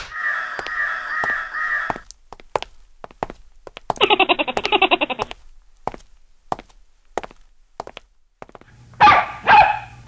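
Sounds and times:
dog barking: 0:09.0 - 0:10.0.

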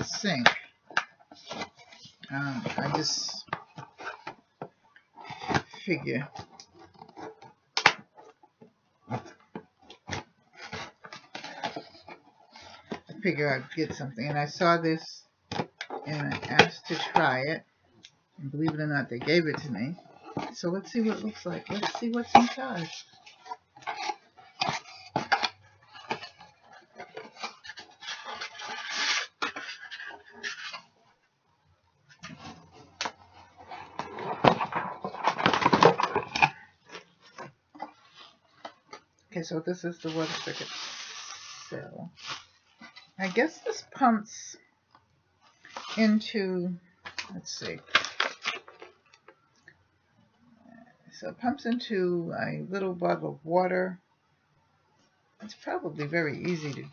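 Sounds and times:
packaging rustling: 0:19.1 - 0:31.0, 0:32.1 - 0:39.1, 0:40.0 - 0:43.7, 0:47.0 - 0:49.4
plastic parts clicking and knocking: 0:32.1 - 0:38.0.

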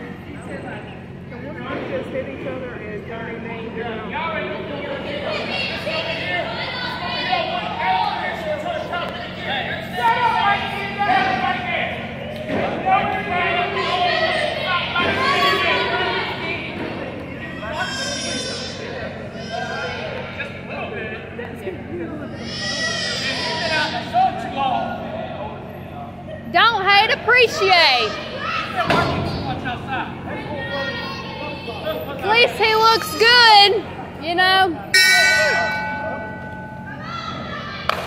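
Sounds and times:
voices talking and shouting: 0:00.0 - 0:38.0.

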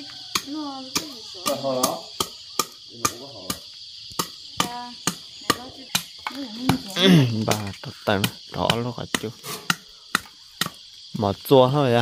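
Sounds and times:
machete chopping wood: 0:00.3 - 0:10.8.

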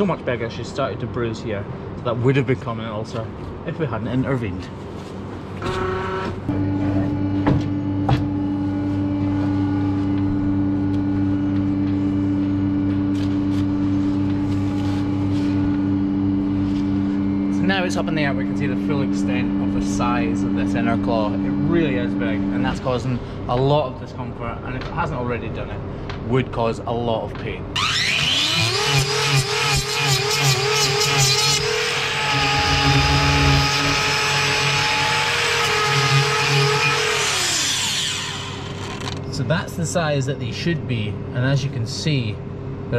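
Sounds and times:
motor humming steadily: 0:05.4 - 0:24.9, 0:27.7 - 0:42.9
angle grinder cutting: 0:27.8 - 0:39.2.

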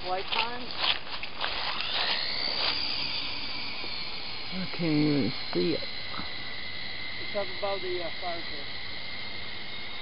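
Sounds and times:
toy helicopter motors whining: 0:00.0 - 0:10.0.

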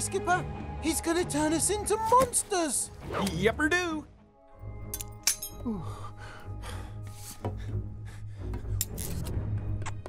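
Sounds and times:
film soundtrack music: 0:00.0 - 0:10.0.

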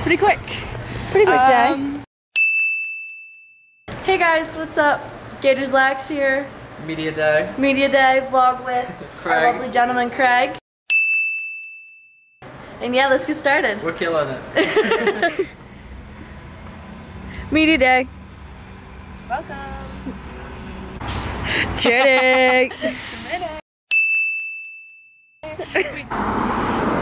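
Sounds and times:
bright bell-like ding: 0:02.4 - 0:03.7, 0:10.9 - 0:12.3, 0:23.9 - 0:25.2.

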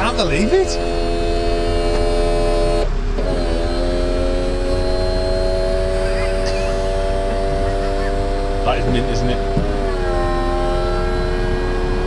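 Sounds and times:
electric roof pump whine: 0:00.0 - 0:12.0.

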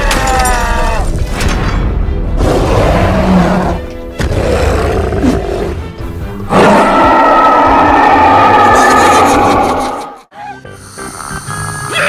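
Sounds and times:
music: 0:00.0 - 0:12.0
cartoon monster roars: 0:06.5 - 0:10.2.

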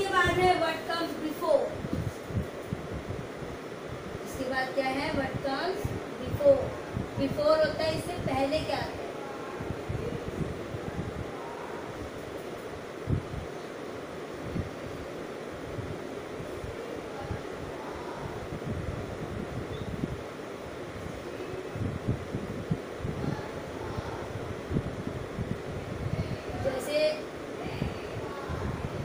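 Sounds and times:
steady background hiss: 0:00.0 - 0:29.0
bumps and rustles near microphone: 0:01.4 - 0:09.0.

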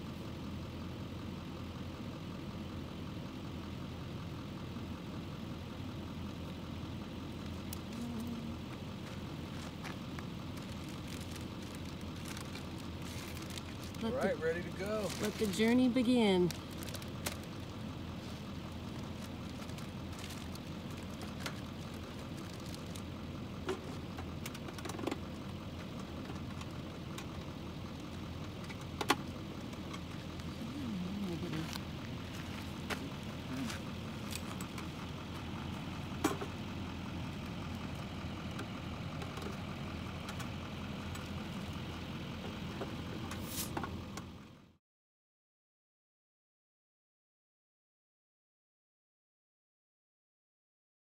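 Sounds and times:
car engine idling: 0:00.0 - 0:44.8.

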